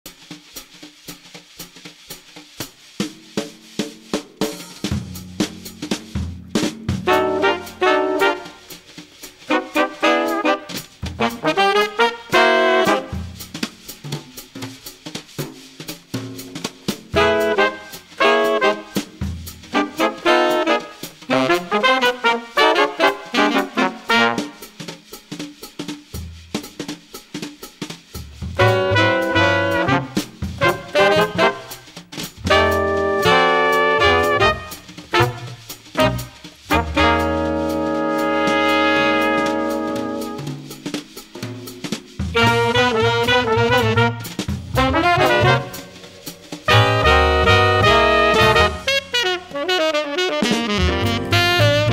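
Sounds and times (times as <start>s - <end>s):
jazz drum kit playing: 0.0s - 51.9s
short brass figure: 7.0s - 8.8s, 9.5s - 13.2s, 17.2s - 19.0s, 19.7s - 24.6s, 28.6s - 31.8s, 32.5s - 40.4s, 42.4s - 46.0s, 46.7s - 51.9s
low bass notes: 50.8s - 51.9s.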